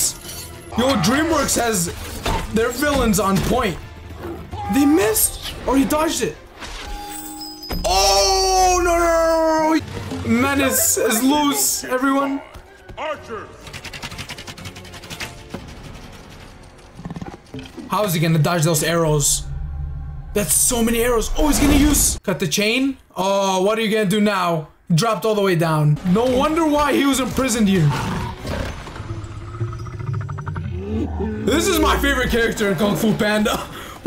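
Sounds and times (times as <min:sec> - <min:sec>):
dramatic film music: 0:00.0 - 0:22.2, 0:24.7 - 0:34.0
low rumble: 0:18.8 - 0:22.2.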